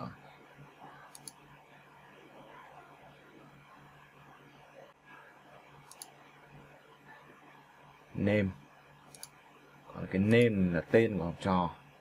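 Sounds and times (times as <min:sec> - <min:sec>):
computer mouse clicks: 0:01.0 - 0:01.5, 0:05.8 - 0:06.2, 0:09.0 - 0:09.4.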